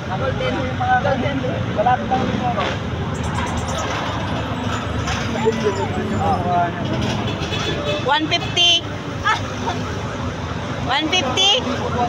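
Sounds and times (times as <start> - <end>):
traffic rumble: 0.0 - 12.0
people talking: 4.7 - 7.2, 10.9 - 12.0.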